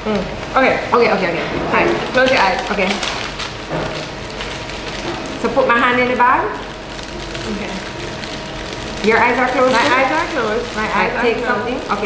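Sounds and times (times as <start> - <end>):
paper bag rustling and crinkling: 1.3 - 12.0.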